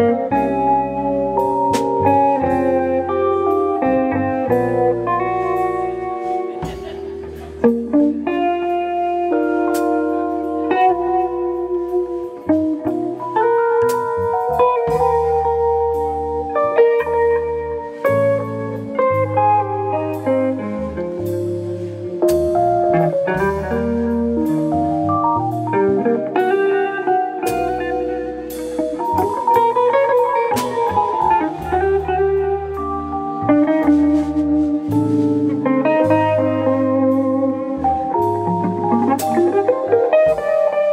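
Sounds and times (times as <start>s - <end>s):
drum kit with cymbals: 0.0s - 40.9s
electric guitar melody: 0.0s - 40.9s
walking electric bass: 0.0s - 40.9s.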